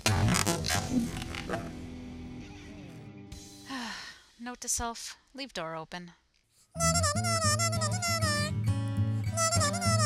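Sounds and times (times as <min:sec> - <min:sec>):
background music with held notes: 0:01.1 - 0:03.7, 0:06.8 - 0:10.0.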